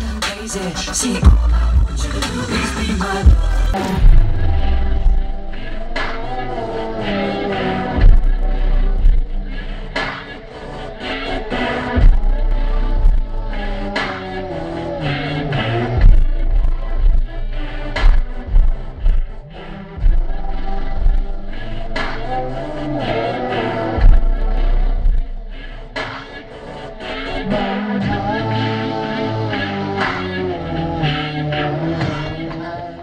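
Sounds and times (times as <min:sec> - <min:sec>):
music with deep bass and beat: 0:00.0 - 0:33.0.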